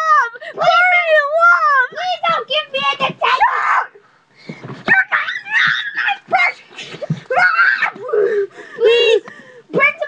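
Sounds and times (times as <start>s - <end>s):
boy yelling and screeching: 0.0s - 4.0s, 4.9s - 10.0s.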